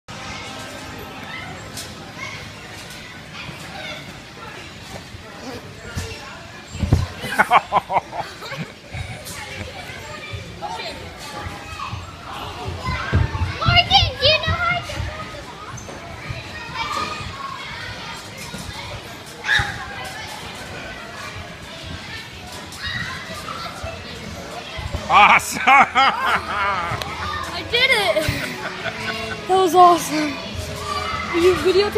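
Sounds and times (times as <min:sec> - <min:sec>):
children's voices overlapping: 0:00.1 - 0:31.9
general hubbub: 0:00.1 - 0:31.9.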